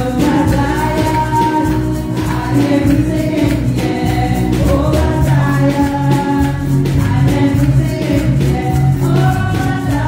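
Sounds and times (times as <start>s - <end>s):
keyboard accompaniment: 0.0s - 10.0s
women singing gospel song: 0.0s - 10.0s.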